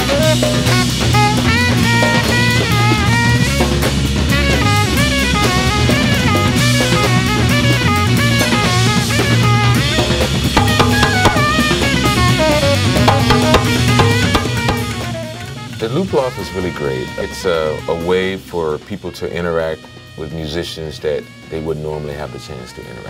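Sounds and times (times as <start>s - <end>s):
drum kit groove: 0.0s - 15.7s
bass line: 4.4s - 15.4s
melodic lead line: 10.6s - 12.2s, 13.1s - 15.2s.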